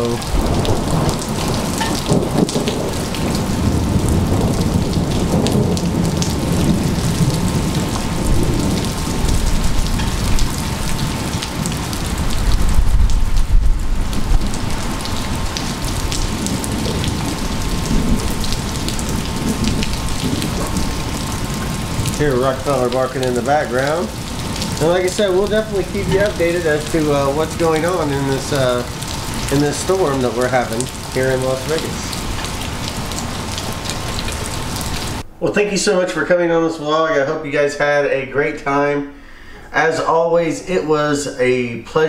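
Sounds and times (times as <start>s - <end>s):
rain pattering on gravel and concrete: 0.0s - 35.2s
thunder rumble: 0.0s - 36.2s.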